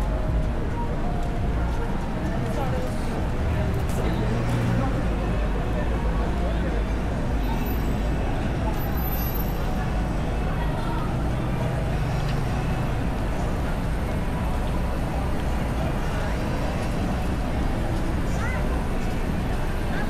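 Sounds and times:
passers-by voices: 0:00.0 - 0:20.0
car engines passing: 0:01.3 - 0:20.0.

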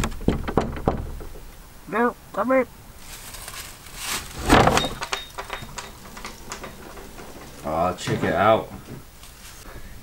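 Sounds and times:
wooden door knocks and clicks: 0:00.0 - 0:01.5, 0:04.4 - 0:09.1
door scraping clatter: 0:03.9 - 0:09.6
high door squeak: 0:04.3 - 0:08.4.

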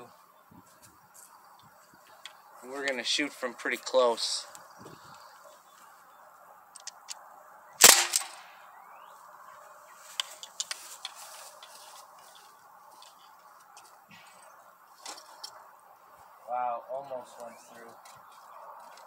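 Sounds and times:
faint clicks: 0:06.7 - 0:07.2
air rifle shot: 0:07.8 - 0:08.6.

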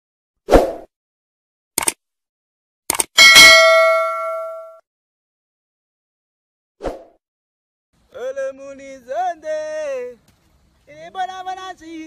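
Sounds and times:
bell-like ding: 0:03.2 - 0:04.8.

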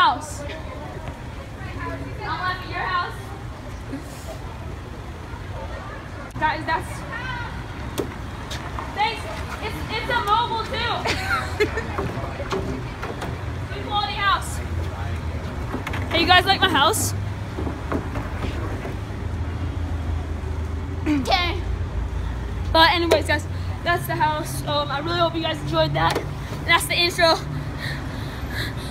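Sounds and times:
faint voices: 0:00.0 - 0:19.1
low street rumble: 0:00.0 - 0:28.9.

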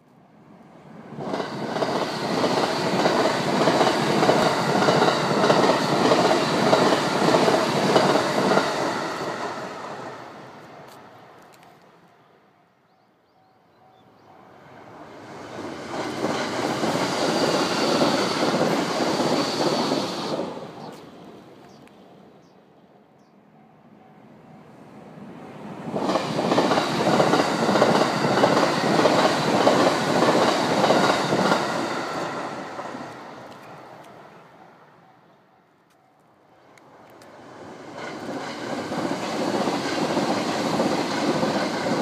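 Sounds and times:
electric trains passing at speed: 0:00.0 - 0:42.0.

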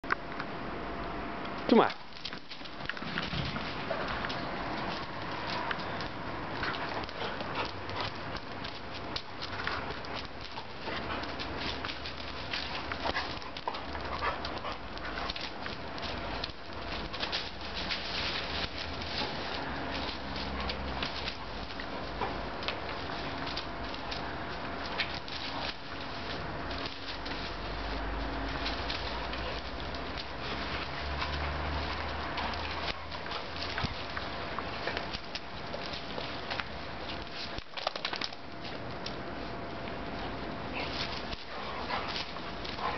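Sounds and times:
paws pattering and clicking: 0:01.4 - 0:42.9
dog sounds: 0:03.3 - 0:36.4, 0:40.6 - 0:42.9.

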